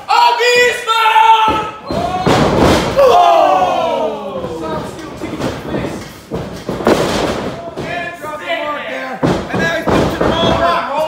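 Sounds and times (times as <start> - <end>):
wrestler yelling: 0.0 - 4.8
bodies thudding on ring: 1.5 - 3.2, 4.4 - 8.1.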